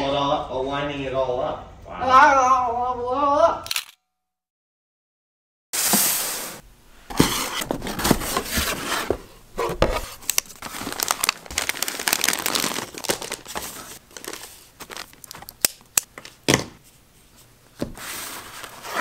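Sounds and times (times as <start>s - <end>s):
packaging crinkling and rustling: 7.3s - 16.4s.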